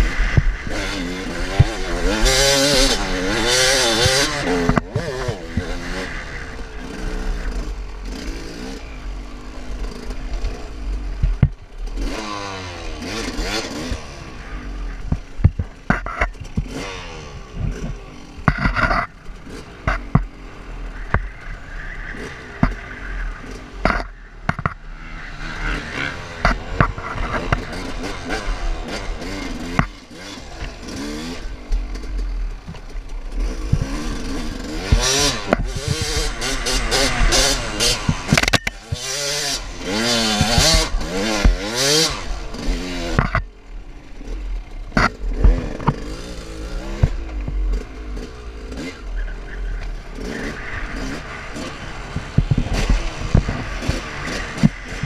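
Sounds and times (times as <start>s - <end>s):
dirt bike engine revving: 0.0s - 55.0s.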